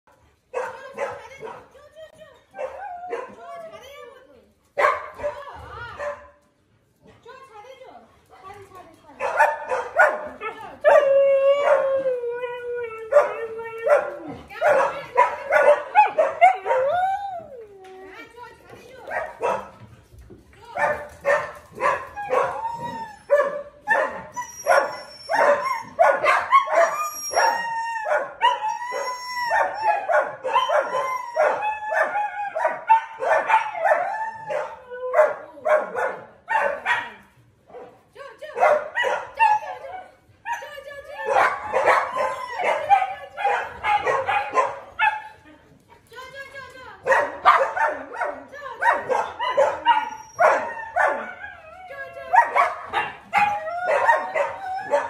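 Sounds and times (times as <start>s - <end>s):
dog howling: 10.8s - 14.5s, 22.1s - 23.4s, 24.4s - 32.7s, 49.1s - 55.0s
dog yipping and barking: 21.3s - 37.1s, 38.6s - 40.6s, 41.2s - 45.2s, 47.1s - 51.6s, 52.3s - 55.0s.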